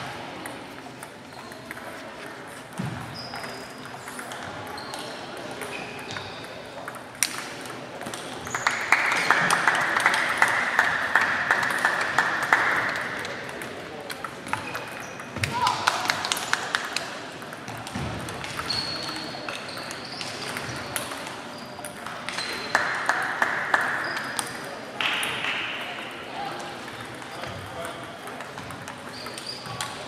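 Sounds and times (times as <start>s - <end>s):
table tennis balls clicking: 5.6s - 25.4s, 26.8s - 30.0s.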